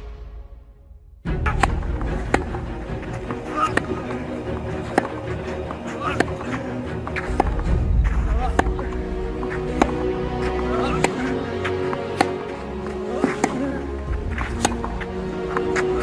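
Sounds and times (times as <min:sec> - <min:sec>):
background music: 0:00.0 - 0:16.0
tennis ball struck with rackets: 0:01.4 - 0:04.2, 0:04.8 - 0:05.2, 0:06.0 - 0:07.6, 0:08.5 - 0:12.6, 0:13.2 - 0:15.8
voices: 0:03.1 - 0:16.0.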